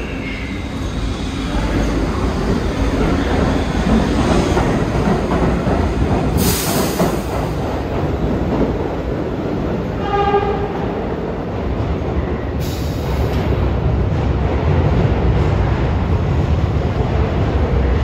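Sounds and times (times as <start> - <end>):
subway train rumbling: 0.0 - 18.0
train horn blast: 10.0 - 10.8.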